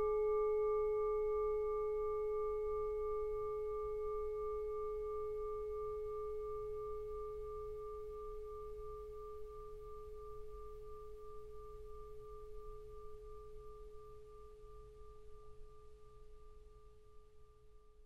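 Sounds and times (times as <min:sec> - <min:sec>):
singing bowl ringing: 0:00.0 - 0:17.9.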